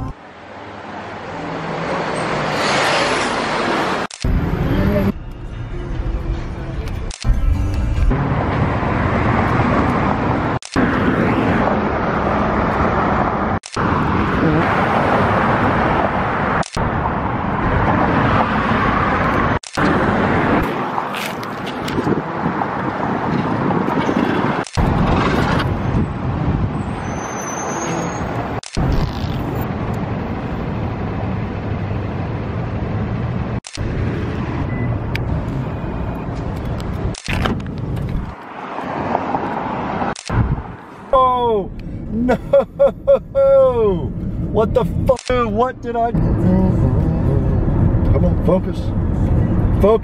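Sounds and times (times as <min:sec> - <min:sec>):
street traffic: 0:00.0 - 0:50.0
low urban rumble: 0:03.5 - 0:50.0.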